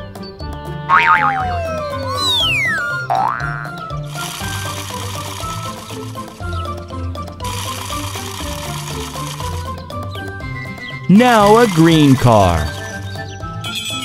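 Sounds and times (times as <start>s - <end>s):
upbeat cartoon music: 0.0s - 14.0s
rising whistle sound effect: 1.2s - 3.0s.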